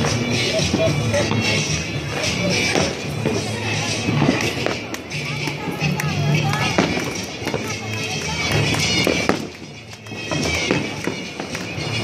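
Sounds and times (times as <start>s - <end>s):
fireworks popping and cracking: 0.0s - 12.0s
music: 0.0s - 12.0s
people's voices: 0.0s - 12.0s.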